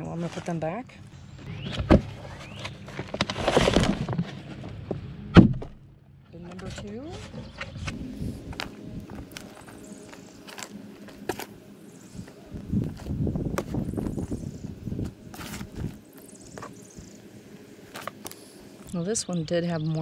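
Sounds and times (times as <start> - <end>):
leaf litter rustling: 2.5 - 4.4, 7.9 - 17.2.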